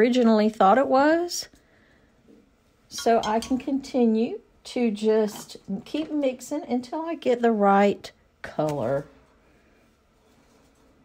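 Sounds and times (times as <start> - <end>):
voice: 0.0 - 1.6, 2.9 - 9.1.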